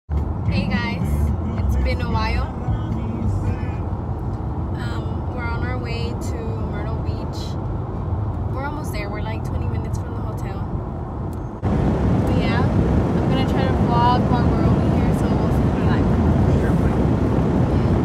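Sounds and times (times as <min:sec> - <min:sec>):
car engine rumble and road noise: 0:00.1 - 0:18.0
person speaking: 0:00.5 - 0:02.5.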